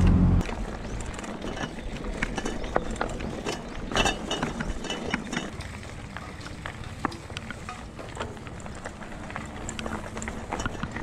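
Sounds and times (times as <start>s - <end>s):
bike rattling over gravel: 0.4s - 11.0s.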